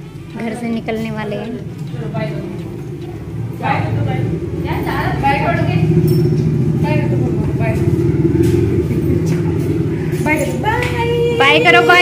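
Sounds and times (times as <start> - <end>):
steady low rumble: 0.0 - 12.0
people talking indistinctly: 0.4 - 12.0.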